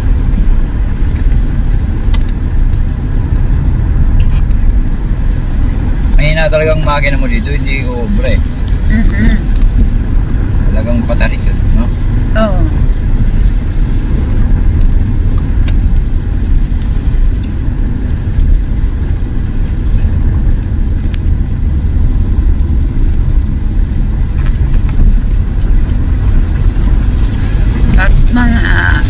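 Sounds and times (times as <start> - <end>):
car interior driving rumble: 0.0 - 29.0.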